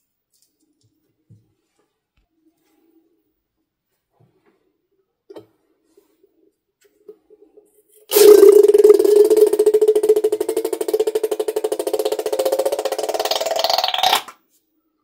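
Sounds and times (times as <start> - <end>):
balloon neck buzzing: 8.1 - 14.4.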